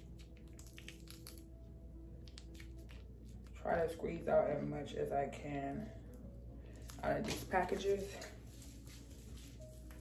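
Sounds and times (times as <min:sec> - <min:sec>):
faint music with held notes: 0:00.0 - 0:10.0
plastic sachet squeezed clicks: 0:00.4 - 0:01.5.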